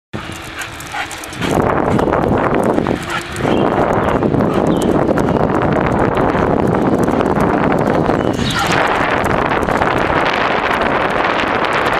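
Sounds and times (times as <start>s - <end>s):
bicycle road noise: 0.2s - 11.9s
dog running: 0.2s - 11.9s
wind rushing over microphone: 0.2s - 11.9s.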